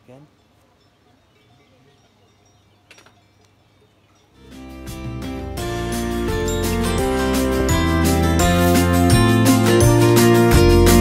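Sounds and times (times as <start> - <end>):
distant cowbells clinking: 0.0 - 8.5.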